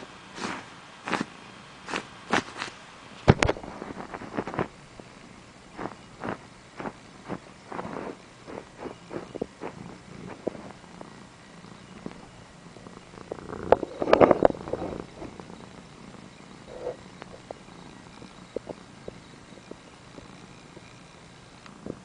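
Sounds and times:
kitten purring: 0.0s - 2.7s, 3.3s - 22.0s
rubbing noise: 0.4s - 1.3s, 1.9s - 2.8s, 3.5s - 4.7s, 5.8s - 10.9s, 13.6s - 15.6s, 16.6s - 17.7s.

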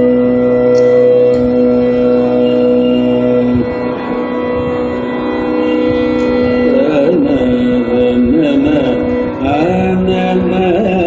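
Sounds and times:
drone: 0.0s - 11.0s.

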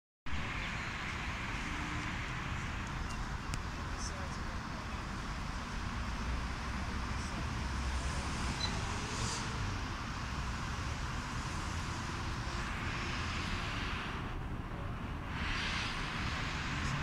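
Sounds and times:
distant road traffic: 0.3s - 17.0s.

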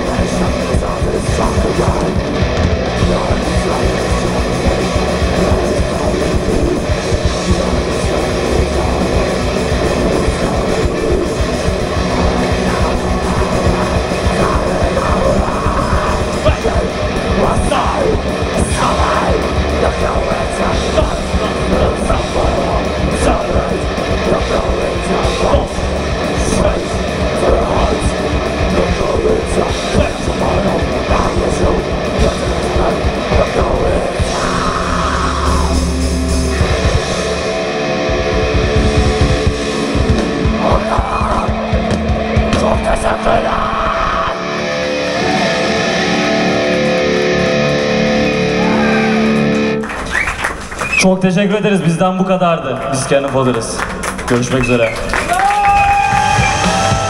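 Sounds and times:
fast drums: 0.0s - 47.2s, 48.6s - 57.0s
bass guitar: 0.0s - 57.0s
distorted electric guitars: 0.0s - 57.0s.

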